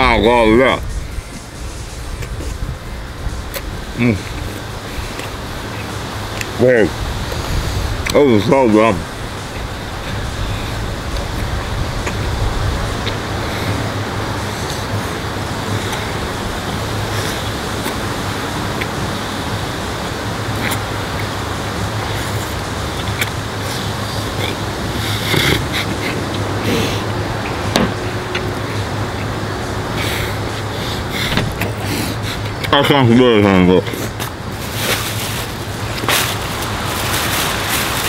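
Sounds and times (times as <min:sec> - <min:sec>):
constant low hum: 0:00.0 - 0:38.0
distant traffic: 0:00.0 - 0:38.0.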